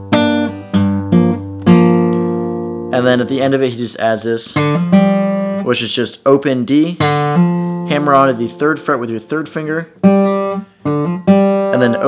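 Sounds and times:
acoustic guitar two-note figure: 0.0 - 3.6, 7.0 - 12.0.

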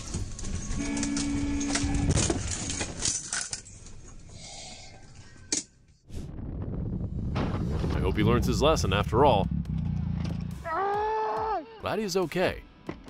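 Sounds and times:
car horn: 0.7 - 2.2.

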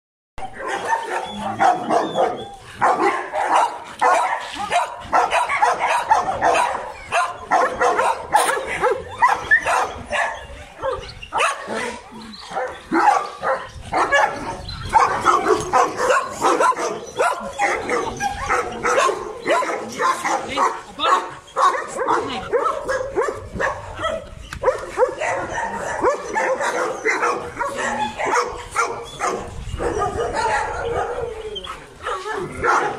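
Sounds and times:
dogs barking: 0.4 - 32.9.

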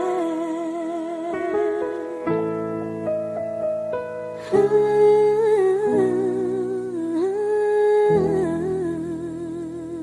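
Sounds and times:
solo voice singing with vibrato: 0.0 - 2.8, 4.3 - 10.0.

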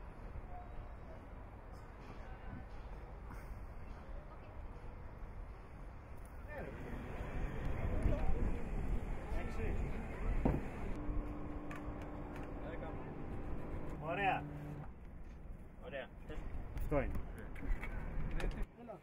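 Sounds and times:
steady low hum: 5.2 - 18.3.

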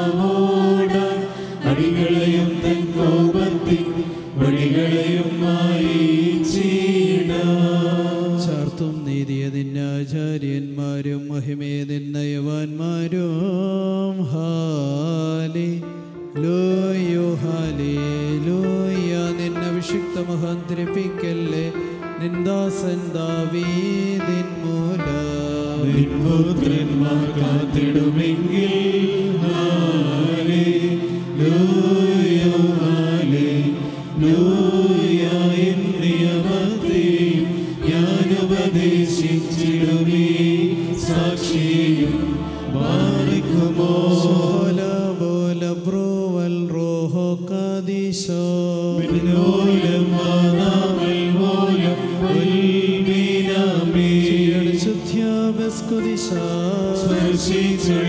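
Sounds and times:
man chanting a hymn: 8.0 - 58.0.

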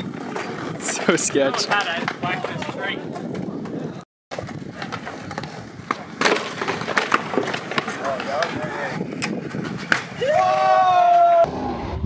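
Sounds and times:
scooter clacking on concrete: 0.0 - 10.6
scooter wheels rolling on concrete: 0.0 - 11.5.

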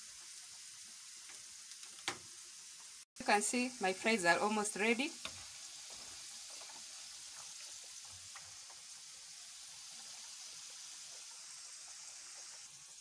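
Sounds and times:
fries sizzling in hot oil: 0.0 - 13.0.

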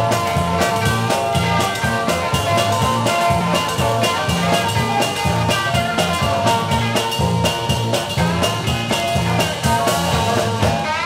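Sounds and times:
bass: 0.0 - 11.0
electric guitar: 0.0 - 11.0
steady drum beat: 0.0 - 11.0.

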